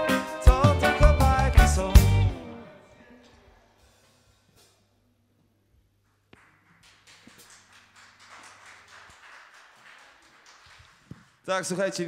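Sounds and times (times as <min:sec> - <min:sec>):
faint scattered clapping: 0:06.0 - 0:11.5.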